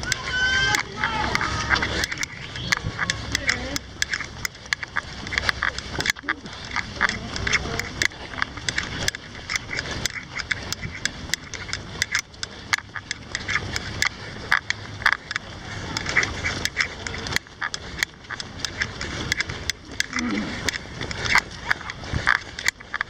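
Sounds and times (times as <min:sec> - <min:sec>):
runners footsteps on asphalt: 0:00.0 - 0:23.0.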